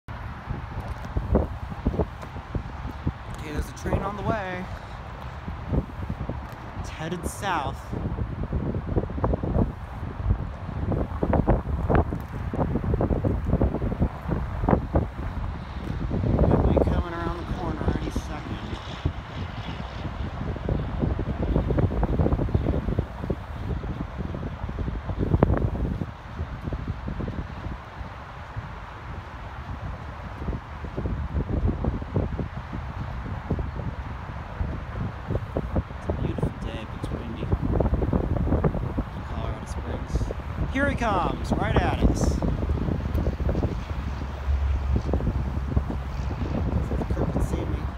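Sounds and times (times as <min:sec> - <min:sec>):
wind buffeting microphone: 0:00.1 - 0:47.9.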